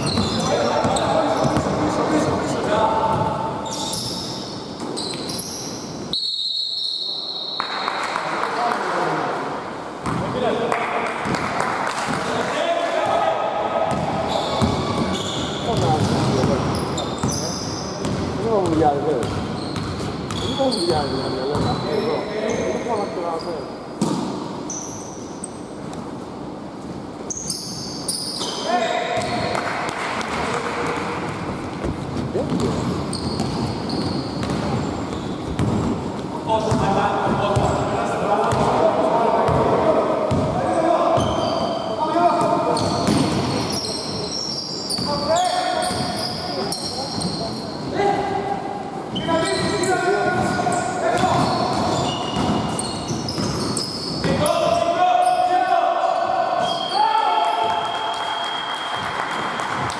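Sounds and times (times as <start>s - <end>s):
sneaker squeaks on floor: 0.0s - 7.9s, 13.9s - 25.7s, 27.2s - 29.6s, 32.0s - 35.9s, 40.3s - 48.0s, 49.1s - 55.5s, 56.6s - 57.1s
basketball bouncing: 13.9s - 17.4s, 31.8s - 34.9s, 35.6s - 36.0s, 40.3s - 40.5s, 51.2s - 53.7s.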